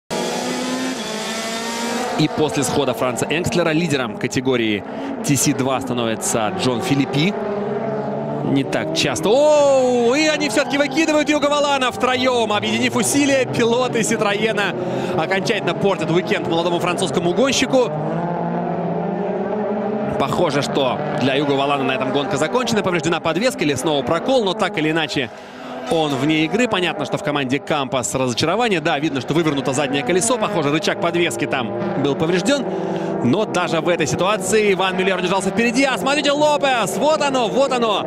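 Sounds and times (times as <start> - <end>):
race car engine at speed: 0.1 - 38.0.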